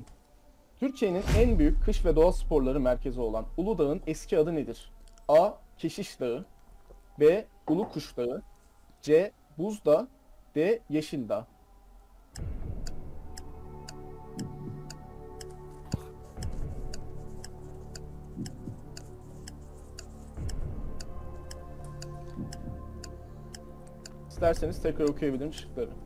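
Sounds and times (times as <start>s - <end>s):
low music bed: 0.0s - 26.0s
clock ticking: 12.4s - 25.9s.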